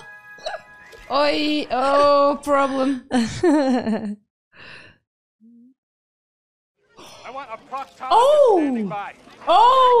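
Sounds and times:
woman laughing: 0:01.9 - 0:04.2.

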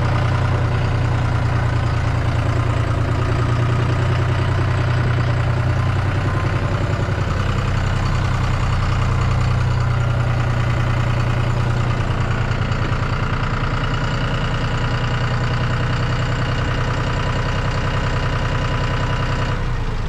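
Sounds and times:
tractor diesel engine idling: 0:00.0 - 0:20.0.

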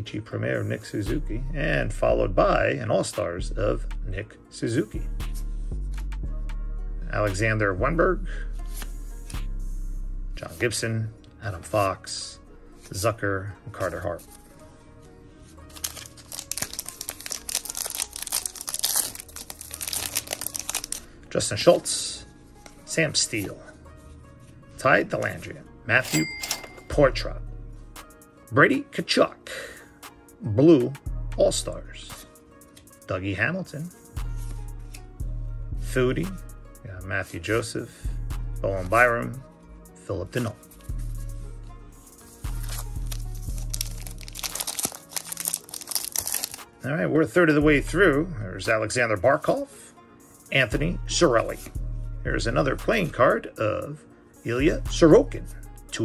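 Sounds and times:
background music with bass line: 0:01.1 - 0:20.9, 0:33.2 - 0:44.7, 0:50.2 - 0:53.5, 0:54.4 - 0:56.0
trading cards rustling: 0:08.6 - 0:09.4, 0:13.8 - 0:21.9, 0:25.2 - 0:27.0, 0:42.0 - 0:46.7
wrapper tearing and crinkling: 0:15.7 - 0:21.0, 0:42.5 - 0:46.7.

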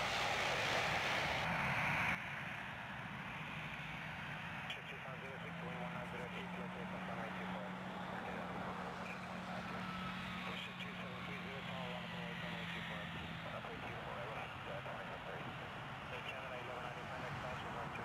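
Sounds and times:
radio hiss: 0:00.0 - 0:01.5, 0:04.6 - 0:18.0
faint unclear voices: 0:04.6 - 0:18.0.

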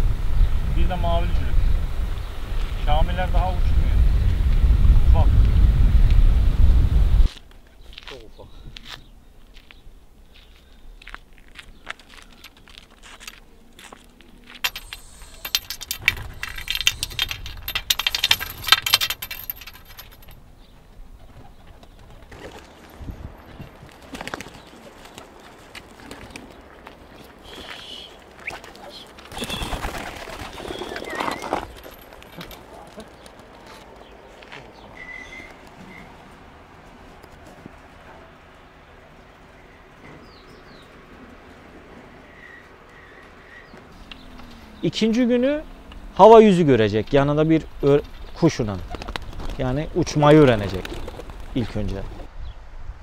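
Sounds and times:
wind buffeting microphone: 0:00.0 - 0:07.3, 0:14.8 - 0:22.3, 0:22.9 - 0:24.1
pigeon wings flapping: 0:21.2 - 0:22.9, 0:23.8 - 0:27.8, 0:28.4 - 0:33.5, 0:48.7 - 0:52.2.

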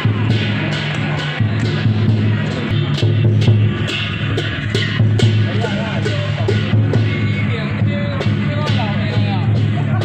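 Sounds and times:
sharp percussive strike: 0:00.0 - 0:10.0.

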